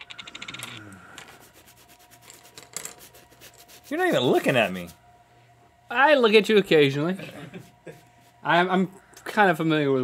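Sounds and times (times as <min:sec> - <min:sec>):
paintbrush scrubbing on canvas: 0:01.3 - 0:05.0.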